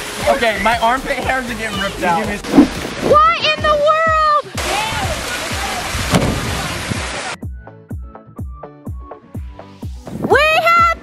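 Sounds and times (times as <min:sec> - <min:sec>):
churning water: 0:00.0 - 0:07.4
splash into swimming pool: 0:04.6 - 0:07.4
music with steady beat: 0:07.4 - 0:10.2.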